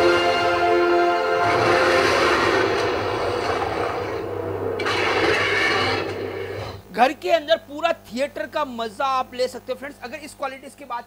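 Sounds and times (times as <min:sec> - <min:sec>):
dinosaur fight sound effects: 0:01.4 - 0:06.8.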